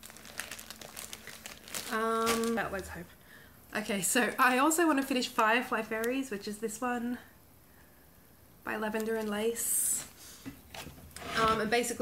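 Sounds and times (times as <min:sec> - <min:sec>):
plastic bag crinkling: 0:00.0 - 0:03.1.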